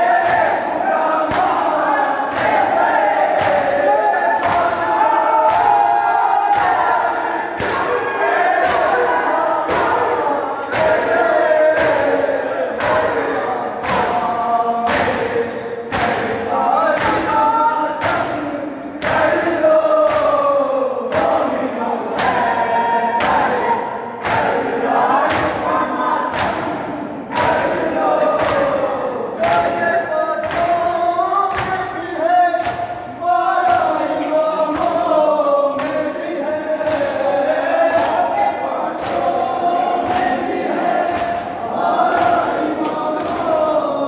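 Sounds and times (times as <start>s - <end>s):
men chanting in unison: 0.0s - 44.0s.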